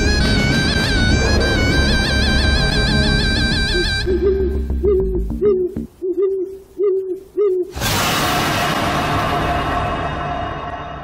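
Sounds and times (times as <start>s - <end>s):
owl hooting: 1.3s - 7.8s.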